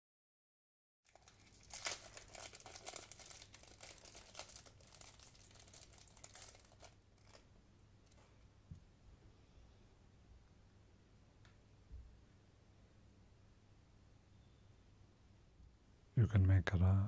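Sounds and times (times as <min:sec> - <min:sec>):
plastic packet crinkling: 0:01.1 - 0:08.3.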